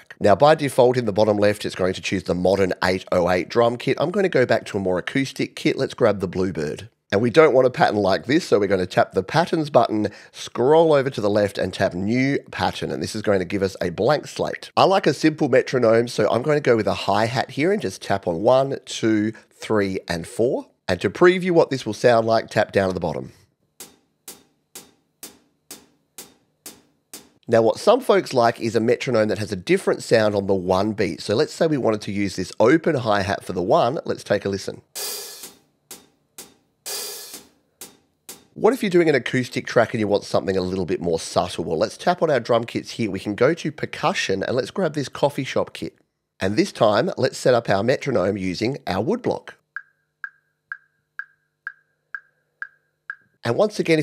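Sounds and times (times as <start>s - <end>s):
hi-hat hits: 23.8s - 27.4s, 35.0s - 38.6s
woodblock knocks: 49.8s - 53.4s.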